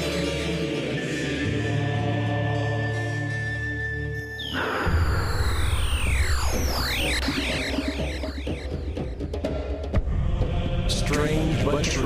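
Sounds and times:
sweeping tones and heavy bass: 0:04.2 - 0:09.6
intro theme music: 0:04.4 - 0:11.2.

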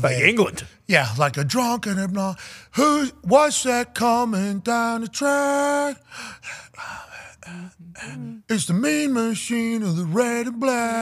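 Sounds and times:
man's breathy puffs and sighs: 0:02.4 - 0:02.8.

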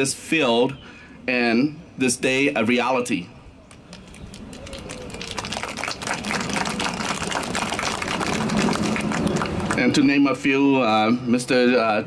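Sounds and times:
audience applause: 0:03.7 - 0:09.9.

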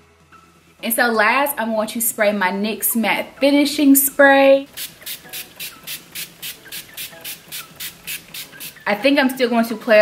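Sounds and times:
spray bottle hissing: 0:04.7 - 0:08.9.

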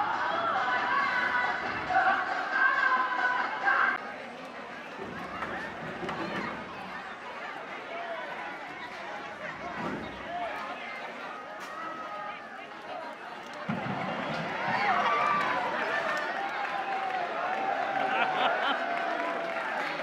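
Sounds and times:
crowd talking and shouting: 0:00.0 - 0:20.0.

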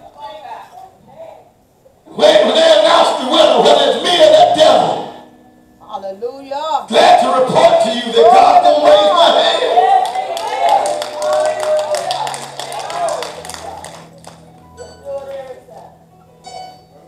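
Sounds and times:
raised voices: 0:02.1 - 0:05.2, 0:06.9 - 0:13.9
low keyboard chords: 0:02.1 - 0:17.0
hand clapping: 0:10.0 - 0:15.9.

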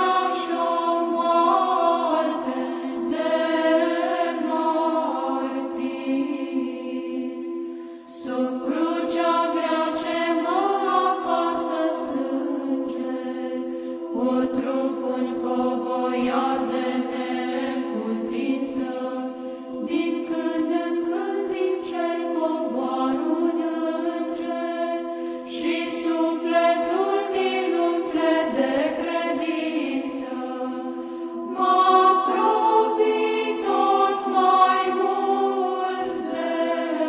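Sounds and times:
voices chanting a slow melody: 0:00.0 - 0:37.0.

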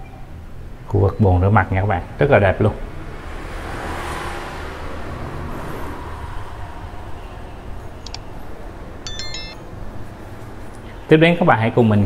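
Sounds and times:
bright stepped chime: 0:09.1 - 0:09.6.

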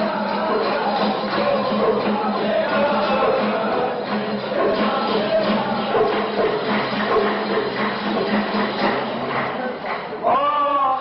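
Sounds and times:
voices and live music: 0:00.0 - 0:11.0.

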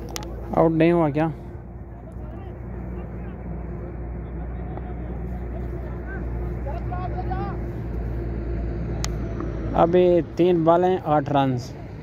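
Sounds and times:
constant hum: 0:00.0 - 0:12.0
steady low rumble: 0:00.0 - 0:12.0
distant shouts of players: 0:01.9 - 0:08.2.

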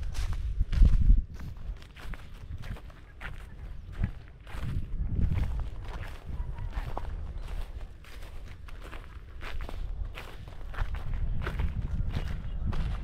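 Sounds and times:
footsteps crunching through dry straw: 0:00.0 - 0:13.0.

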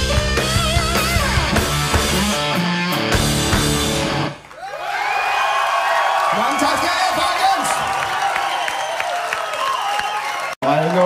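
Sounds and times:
rock band chord: 0:00.0 - 0:04.4
crowd cheering and whooping: 0:04.4 - 0:11.0.

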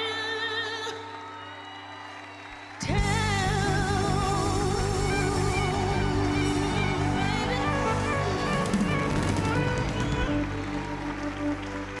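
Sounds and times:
live band holding soul chords: 0:02.8 - 0:12.0.

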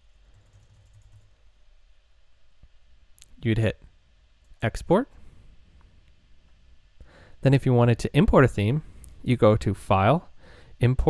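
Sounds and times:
faint low hum: 0:00.0 - 0:11.0
keyboard typing: 0:00.3 - 0:01.3.

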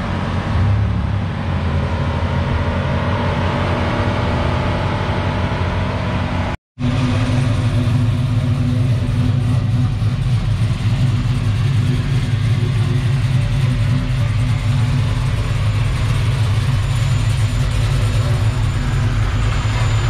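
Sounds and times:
car engine idling: 0:06.8 - 0:20.0.

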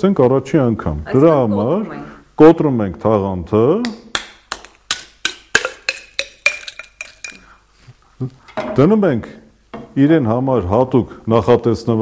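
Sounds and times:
spoon clinking in a cup: 0:05.6 - 0:07.5.

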